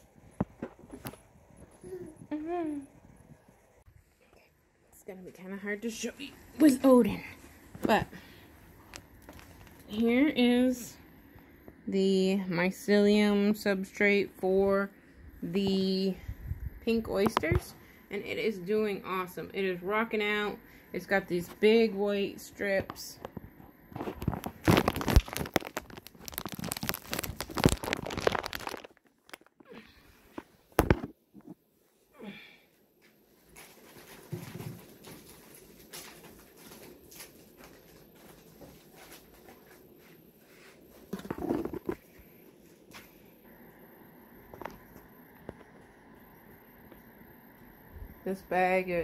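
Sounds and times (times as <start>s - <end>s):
plastic bags crinkling: 24.0s - 29.7s, 33.5s - 39.9s
knocks and rustles: 33.6s - 39.7s.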